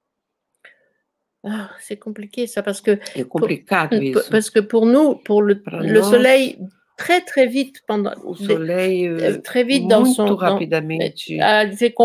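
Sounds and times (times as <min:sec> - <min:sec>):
woman speaking: 0:01.5 - 0:12.0.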